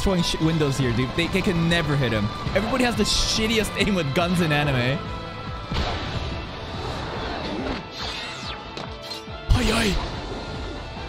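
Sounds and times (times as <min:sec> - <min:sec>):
background music: 0:00.0 - 0:11.0
crash: 0:05.7 - 0:08.6.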